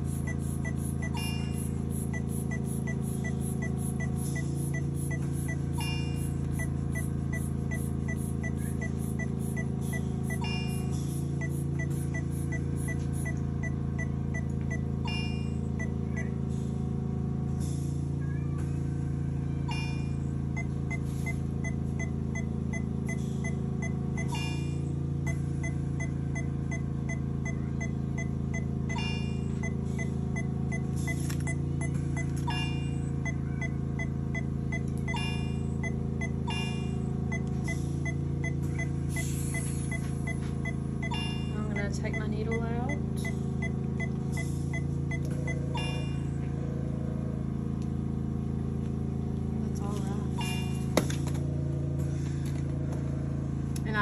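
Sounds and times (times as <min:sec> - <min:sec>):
chime-like monitor tone: 0:00.0 - 0:14.2, 0:14.8 - 0:16.4, 0:19.5 - 0:46.5, 0:50.3 - 0:51.0
patient monitor rapid beeps: 0:00.0 - 0:16.4, 0:19.6 - 0:46.4, 0:50.3 - 0:51.0
equipment hum: 0:00.0 - 0:54.0.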